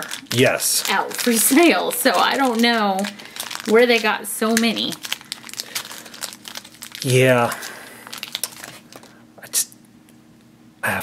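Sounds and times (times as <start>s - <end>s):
plastic bag crinkling: 0.0s - 9.2s.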